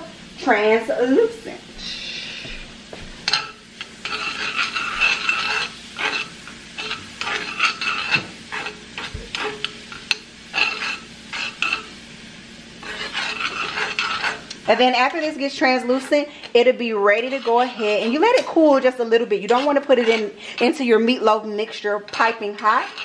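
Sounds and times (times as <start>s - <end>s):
vegetables sizzling in a frying pan: 0.0s - 23.0s
utensil scraping and clicking on pan: 3.3s - 12.0s, 12.8s - 20.8s, 21.6s - 23.0s.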